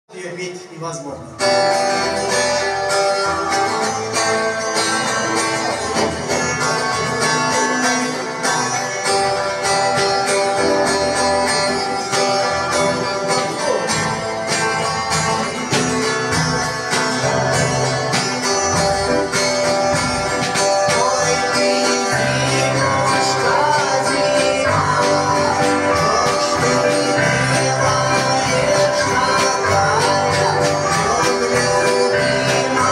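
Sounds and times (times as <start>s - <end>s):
keyboard: 0.1s - 32.9s
electric guitar: 1.2s - 32.9s
drum kit beat: 1.5s - 32.9s.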